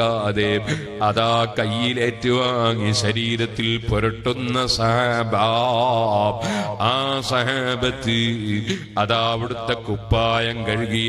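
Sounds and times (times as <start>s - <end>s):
man chanting devotional melody: 0.0s - 11.0s.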